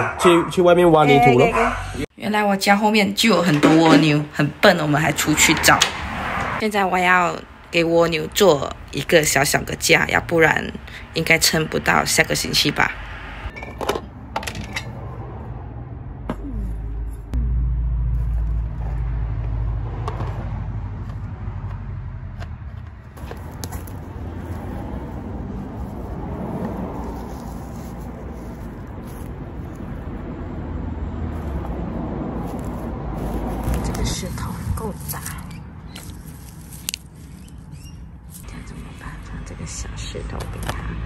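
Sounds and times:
rustle of stones and leaves: 23.2s - 30.1s, 31.3s - 38.5s.

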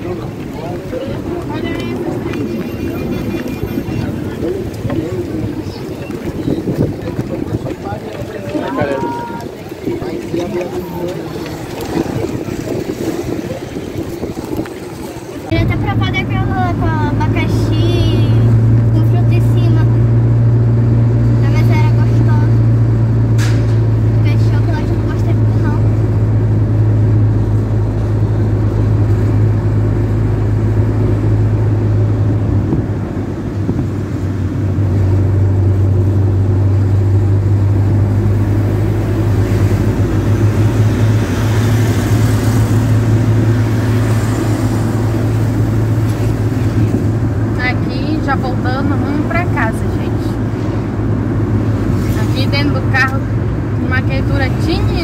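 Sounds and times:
car engine and road hum: 0.0s - 55.0s.

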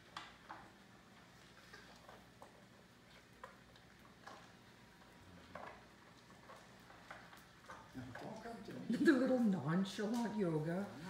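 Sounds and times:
dog eating kibble from metal bowl: 1.5s - 10.6s.

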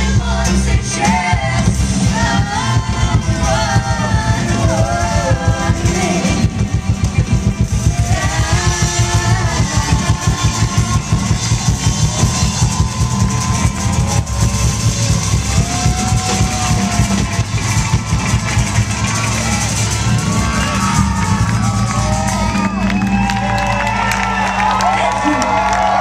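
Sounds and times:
person singing: 0.0s - 11.4s
drum kit beat: 0.0s - 24.6s
folk-rock band playing live: 0.0s - 24.9s.

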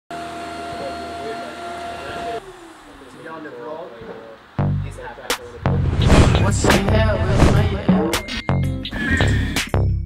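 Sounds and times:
vacuum cleaner whining: 0.1s - 4.6s.

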